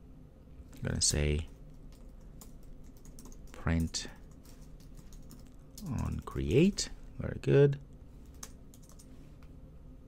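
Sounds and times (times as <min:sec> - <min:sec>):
computer keyboard typing: 0:01.4 - 0:06.8, 0:08.2 - 0:09.1.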